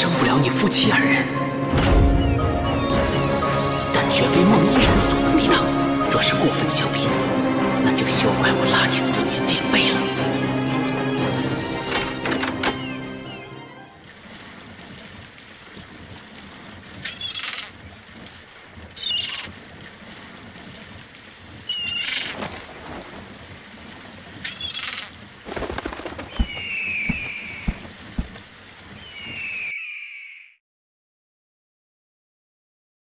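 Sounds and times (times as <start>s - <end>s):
rushing water: 0.0s - 29.7s
birds chirping: 9.4s - 13.7s, 16.8s - 18.0s, 19.0s - 19.5s, 24.4s - 30.5s.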